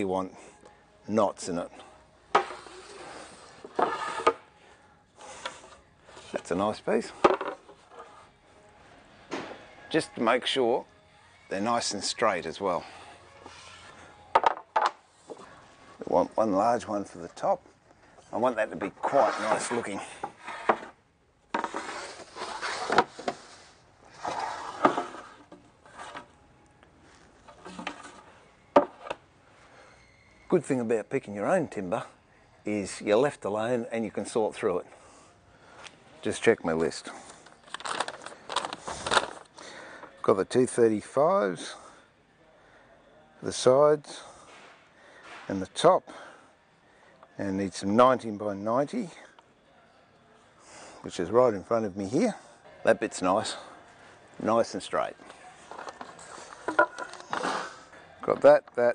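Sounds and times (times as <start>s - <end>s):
wooden boards scraping: 2.4s - 4.4s, 19.0s - 21.0s, 21.6s - 26.3s.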